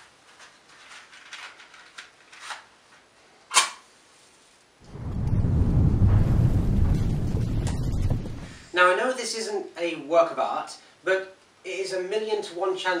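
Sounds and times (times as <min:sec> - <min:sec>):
deep explosion rumble: 0:04.8 - 0:08.7.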